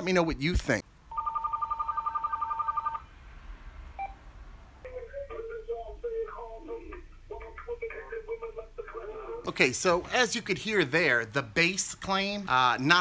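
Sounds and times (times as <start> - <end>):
phone two-tone warbling ring: 1.1 - 3.0
tinny music through phone speaker: 4.9 - 9.5.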